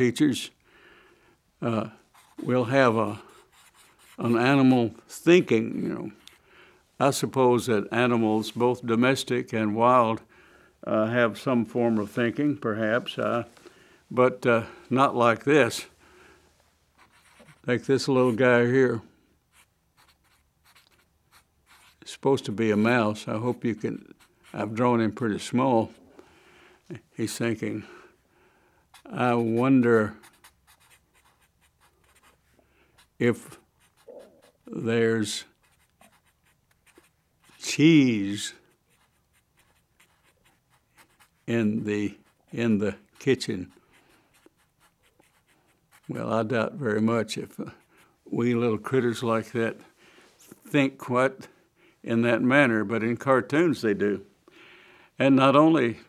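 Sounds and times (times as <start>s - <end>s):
marker strokes on paper: 2.1s - 4.8s, 16.9s - 18.4s, 19.5s - 22.1s, 22.7s - 24.8s, 28.9s - 34.8s, 35.4s - 37.8s, 38.6s - 46.4s.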